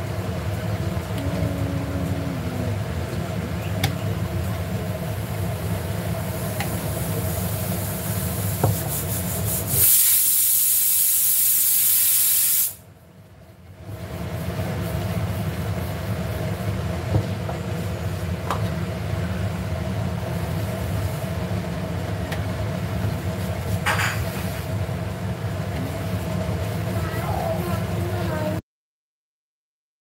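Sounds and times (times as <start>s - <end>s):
steady low hum: 0.0s - 8.2s
pressure cooker hissing steam: 6.3s - 12.8s.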